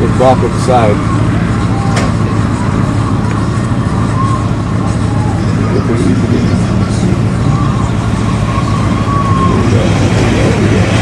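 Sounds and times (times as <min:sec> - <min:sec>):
pickup truck engines rumbling: 0:00.0 - 0:11.0.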